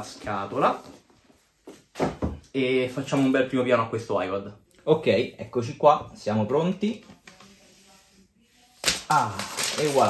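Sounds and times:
plastic wrap rustling: 8.6s - 10.0s.

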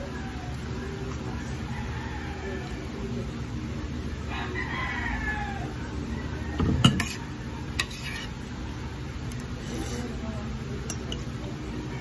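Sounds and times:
rooster crowing: 1.4s - 2.9s, 4.3s - 6.8s.

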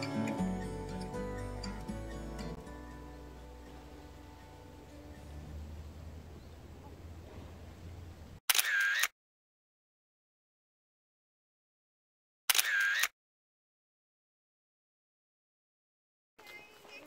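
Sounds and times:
faint outdoor background: 0.0s - 9.1s, 16.4s - 17.0s
camera shutter clicks: 8.5s - 9.1s, 12.5s - 13.1s.

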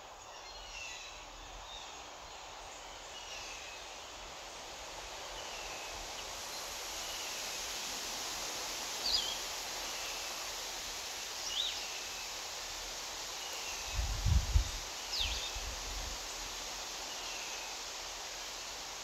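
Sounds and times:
steady hiss: 0.0s - 19.0s.

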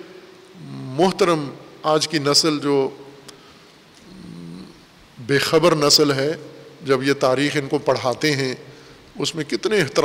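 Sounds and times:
faint low voiced hum: 0.0s - 10.0s.

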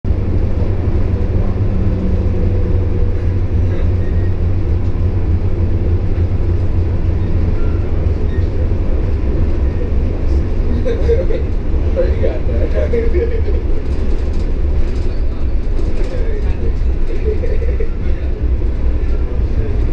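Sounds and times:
bus engine and road noise: 0.0s - 19.9s.

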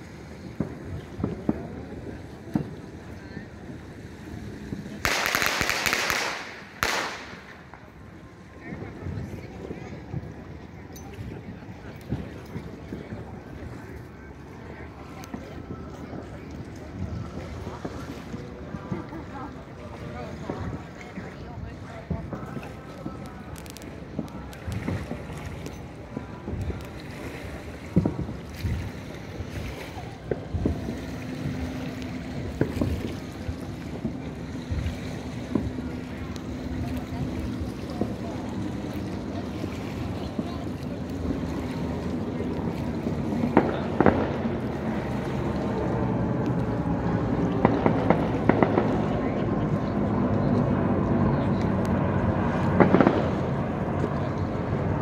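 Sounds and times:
distant firework bangs: 4.7s - 8.0s, 43.1s - 50.2s, 51.0s - 54.9s
low engine drone: 6.4s - 55.0s.

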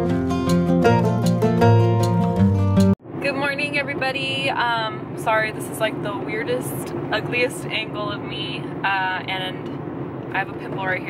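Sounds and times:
car engine: 0.0s - 11.0s
road noise: 0.0s - 11.0s
woman talking: 3.2s - 11.0s.

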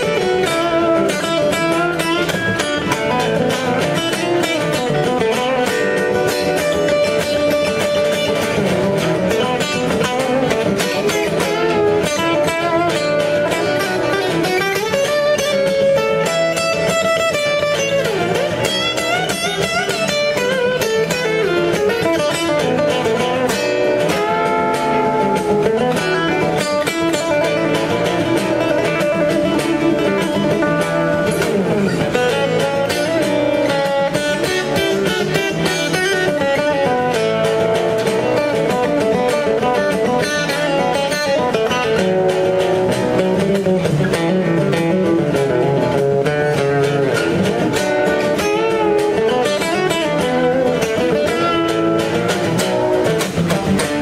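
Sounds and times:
acoustic guitar playing: 0.0s - 54.0s.

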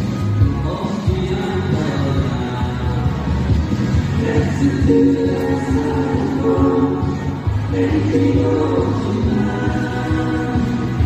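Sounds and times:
backing music with bass: 0.0s - 11.0s
man singing into microphone: 0.4s - 3.3s, 4.1s - 11.0s.

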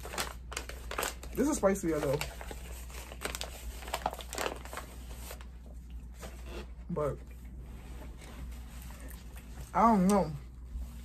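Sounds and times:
paper crinkling: 0.0s - 7.0s.

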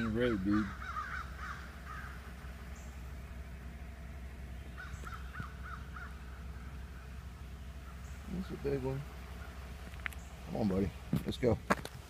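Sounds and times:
bird calling: 0.0s - 11.4s
steady low hum: 0.0s - 12.0s.

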